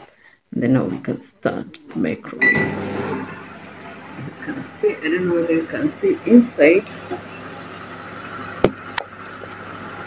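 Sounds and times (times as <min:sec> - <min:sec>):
microwave oven humming: 0:02.4 - 0:10.0.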